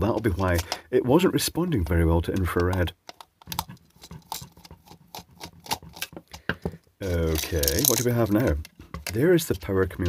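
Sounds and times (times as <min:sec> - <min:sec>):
plastic casing handling: 0:00.0 - 0:00.9, 0:01.6 - 0:10.0.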